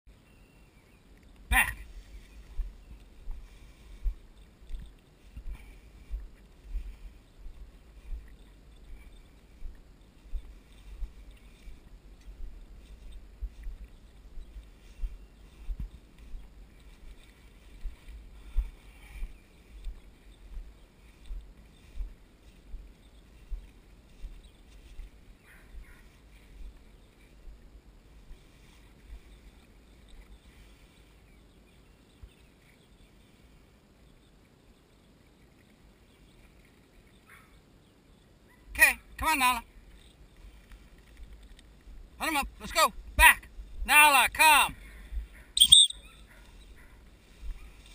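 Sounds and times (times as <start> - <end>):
rustling through tall grass: 0.2 - 34.5, 39.7 - 42.2, 45.1 - 47.9.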